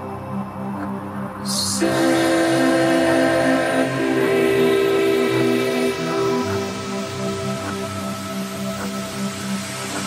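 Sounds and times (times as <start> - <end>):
noise wash: 0.0 - 10.0
pulsing low synth: 0.0 - 10.0
synth chords: 0.0 - 10.0.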